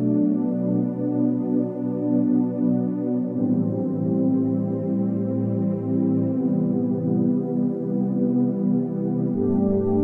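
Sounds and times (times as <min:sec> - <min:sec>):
ambient synthesizer music: 0:00.0 - 0:10.0.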